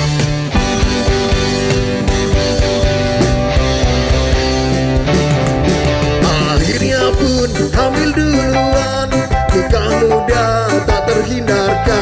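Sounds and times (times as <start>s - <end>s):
ska band playing: 0.0s - 12.0s.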